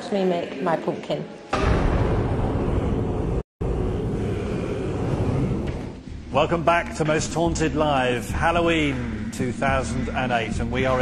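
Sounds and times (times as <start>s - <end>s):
dense rumbling sound effect: 1.6s - 7.8s.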